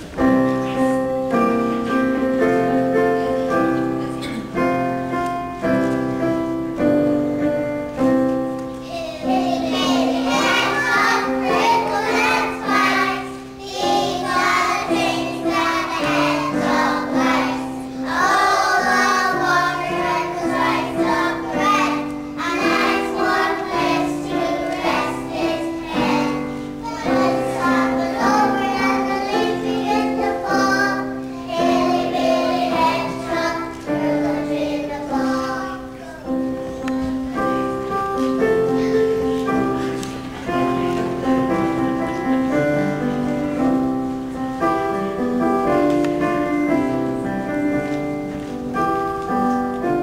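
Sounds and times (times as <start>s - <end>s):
instrumental accompaniment: 0.0s - 50.0s
children singing: 8.8s - 42.6s.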